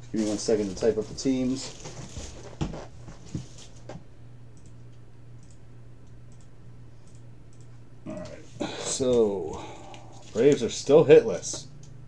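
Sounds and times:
keyboard typing clicks: 5.4s - 7.7s.

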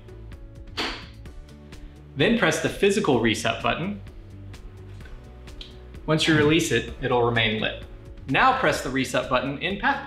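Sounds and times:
background music: 0.0s - 10.0s
button snapping out: 0.8s - 1.1s.

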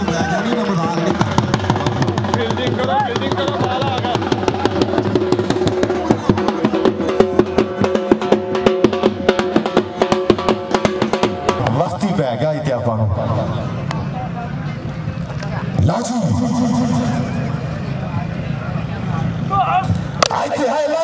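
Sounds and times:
voices: 0.0s - 8.9s, 11.5s - 21.0s
dhol drums beating: 0.0s - 12.4s.

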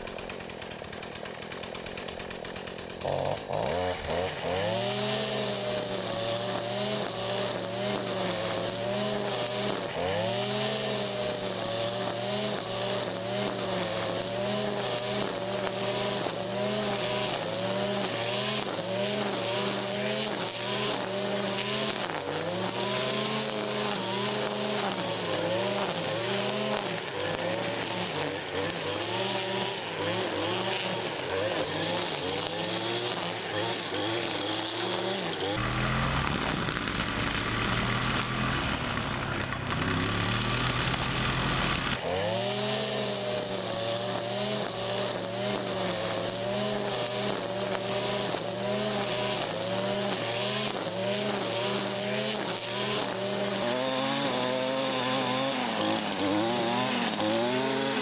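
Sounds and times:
brushcutter engine revving: 0.0s - 58.0s
trimmer line whirring through grass: 0.0s - 58.0s.

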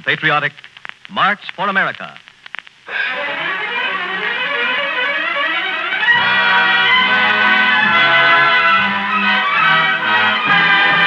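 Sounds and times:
orchestra playing march: 6.0s - 11.0s.

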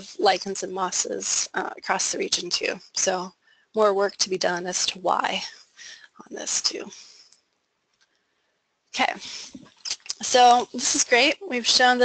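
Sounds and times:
woman speaking: 0.0s - 7.1s, 9.0s - 12.0s.

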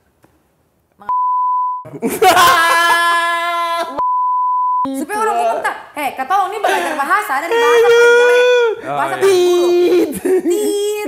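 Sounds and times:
censor bleep: 1.1s - 1.8s, 4.0s - 4.9s.

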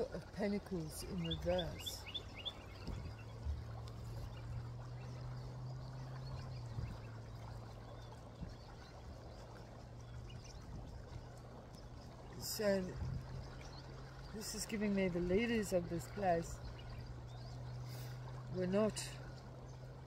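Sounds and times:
low motor hum: 0.0s - 20.0s
outdoor background noise: 0.0s - 20.0s.

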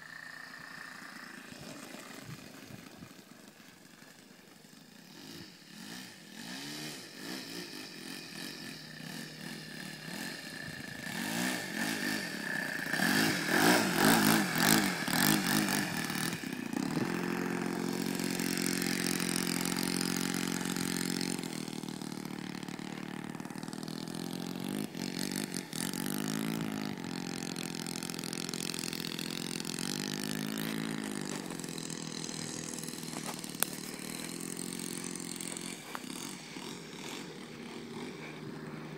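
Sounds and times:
model plane engine running: 0.0s - 38.9s.

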